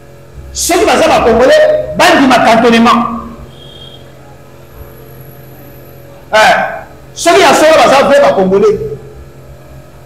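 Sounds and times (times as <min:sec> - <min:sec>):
low steady hum: 0:00.0 - 0:10.0
man speaking: 0:00.5 - 0:03.4, 0:06.3 - 0:09.1.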